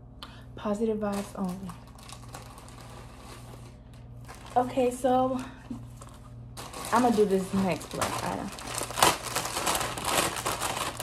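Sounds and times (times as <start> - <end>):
rustling of handled items: 1.1 - 11.0.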